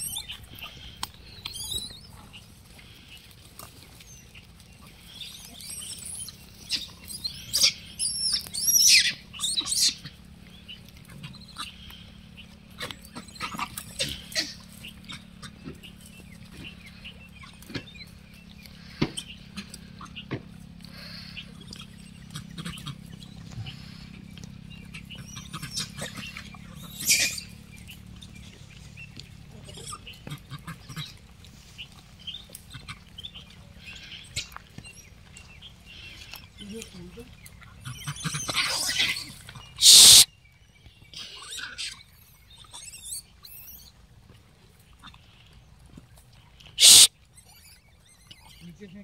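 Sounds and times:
faint high squeaks: 46.8s - 48.6s.

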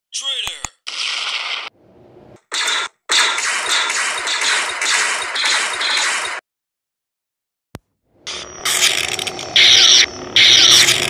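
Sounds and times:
rapid blaster fire: 2.5s - 6.4s, 9.6s - 11.0s.

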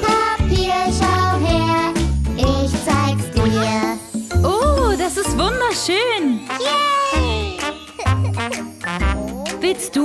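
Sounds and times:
children's background music: 0.0s - 10.0s
child exclaiming: 6.6s - 8.3s.

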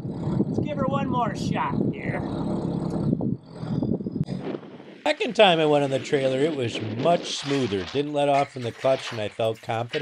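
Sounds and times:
vehicle engine running at low speed: 0.0s - 7.4s.

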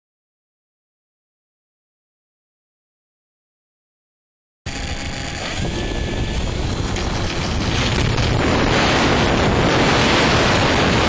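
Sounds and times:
electric motor whine: 4.7s - 10.5s
wind buffeting microphone: 4.9s - 11.0s.

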